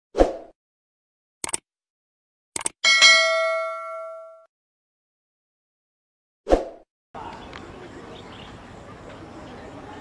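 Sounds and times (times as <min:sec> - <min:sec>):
double mouse click: 0:01.4 - 0:01.6, 0:02.6 - 0:02.8
notification bell chime: 0:02.9 - 0:04.5.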